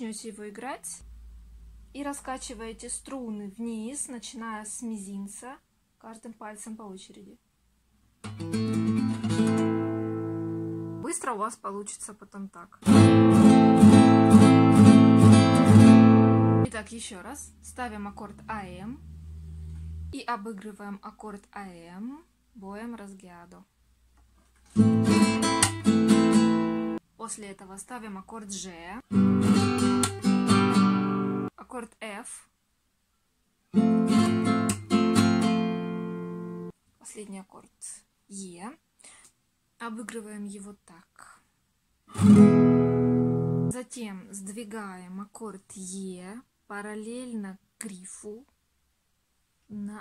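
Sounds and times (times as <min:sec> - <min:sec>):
classical guitar strummed chord: 0:12.8 - 0:16.7, 0:33.8 - 0:36.7.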